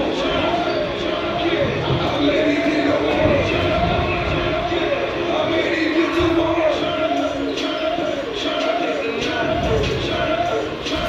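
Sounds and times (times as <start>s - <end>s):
background music: 0.0s - 11.0s
indistinct voices: 0.0s - 11.0s.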